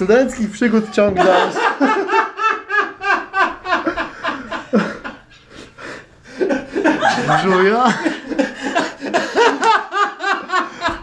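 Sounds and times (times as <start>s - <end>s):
young man laughing hard: 0.7s - 5.4s, 6.3s - 11.0s.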